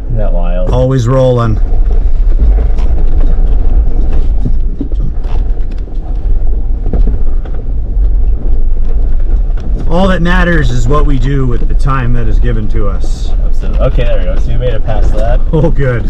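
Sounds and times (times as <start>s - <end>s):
low engine rumble: 0.0s - 16.0s
tyres crunching over rock: 0.7s - 16.0s.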